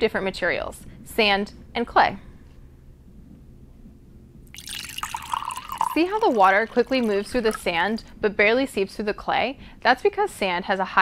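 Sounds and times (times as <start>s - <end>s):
water splashing and trickling: 4.5s - 8.0s.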